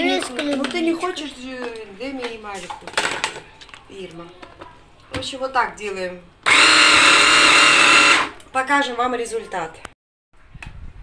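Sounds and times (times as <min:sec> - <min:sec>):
hand blender motor whine: 0:06.4 - 0:08.4.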